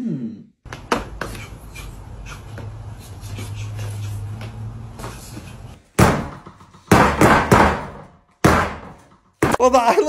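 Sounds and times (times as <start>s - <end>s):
boxing gloves hitting a tabletop: 6.0s - 9.6s.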